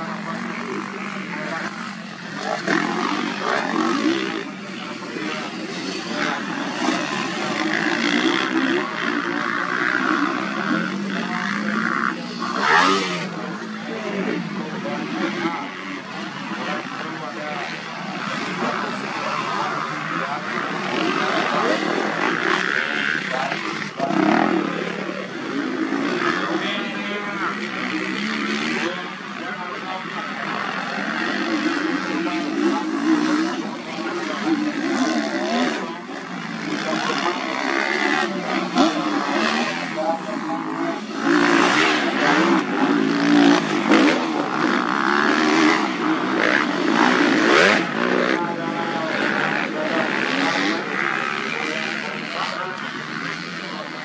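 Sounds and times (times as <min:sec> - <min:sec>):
motocross bike engines revving: 0:00.0 - 0:54.0
voices: 0:00.0 - 0:54.0.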